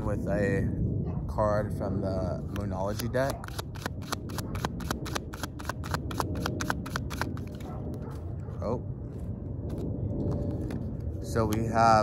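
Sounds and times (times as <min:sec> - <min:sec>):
low background rumble: 0:00.0 - 0:12.0
cards shuffled by hand: 0:02.9 - 0:08.1.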